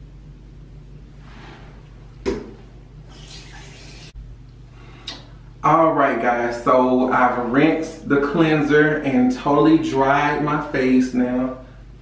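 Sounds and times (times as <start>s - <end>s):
water running from sink tap: 3.1s - 4.2s.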